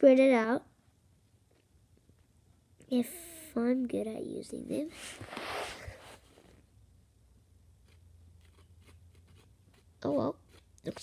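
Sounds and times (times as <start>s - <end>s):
low steady hum: 0.0s - 11.0s
stick scraping paint on cardboard: 7.8s - 11.0s.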